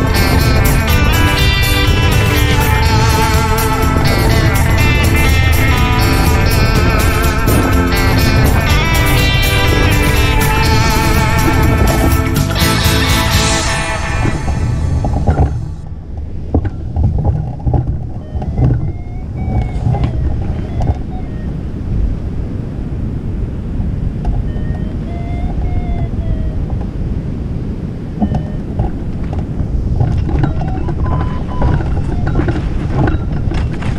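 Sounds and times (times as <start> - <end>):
wind buffeting microphone: 0.0 - 33.9
faint high calls: 18.0 - 21.9, 24.4 - 26.8, 28.1 - 29.3, 30.2 - 33.4.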